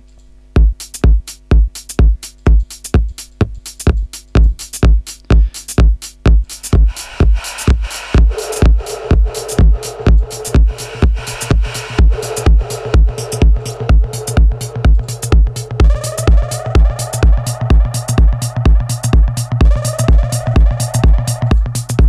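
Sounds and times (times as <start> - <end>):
electronic dance music: 0.6 - 22.0
kick drum beat: 0.6 - 22.0
rising synth sweep: 6.6 - 21.5.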